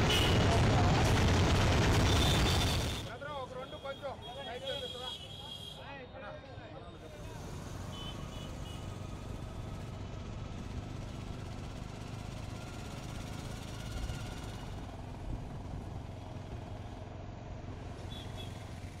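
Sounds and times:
motorcycle engines: 0:00.0 - 0:05.7, 0:06.5 - 0:19.0
auto-rickshaw engines: 0:00.0 - 0:19.0.

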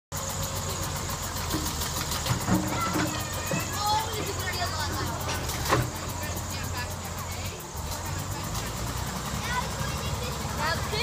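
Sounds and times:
diesel engine running: 0:00.1 - 0:11.0.

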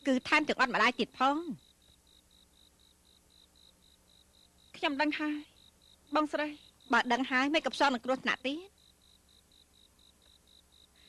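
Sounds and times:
cricket chirping: 0:00.0 - 0:11.0.

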